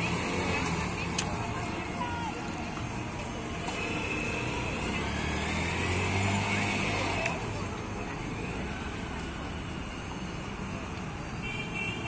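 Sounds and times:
steady hum of traffic: 0.0s - 12.0s
vehicle engine passing close: 4.4s - 7.4s.

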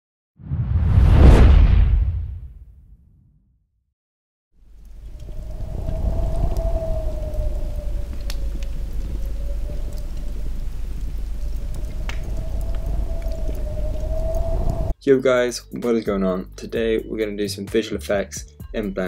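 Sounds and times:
faint crackles: 4.6s - 14.9s
deep rumbling drone: 4.7s - 15.0s.

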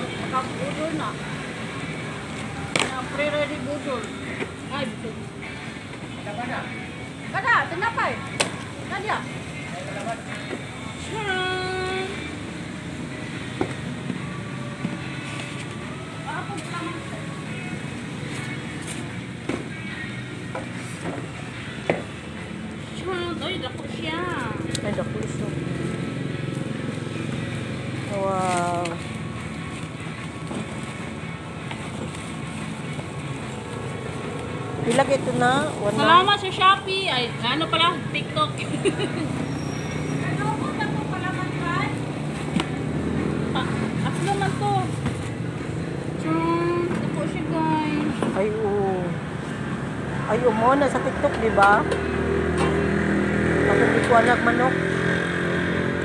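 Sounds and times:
voices talking: 0.0s - 56.0s.

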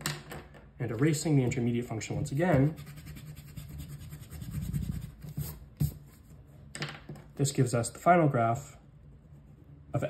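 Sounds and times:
eraser rubbing on paper: 2.5s - 6.1s.

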